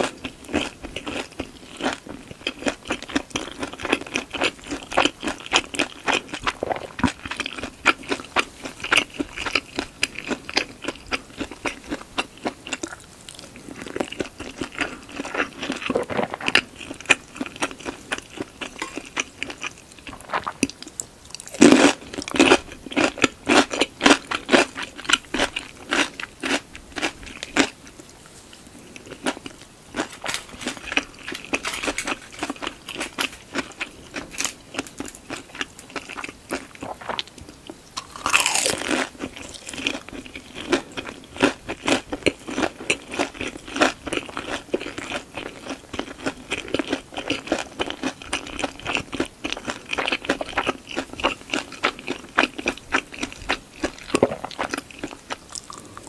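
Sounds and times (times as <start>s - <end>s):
person chewing crisp food: 0.0s - 56.0s.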